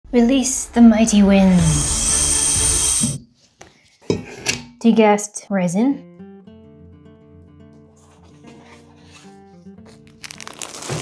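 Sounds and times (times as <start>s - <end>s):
air hissing through valve: 1.5s - 3.2s.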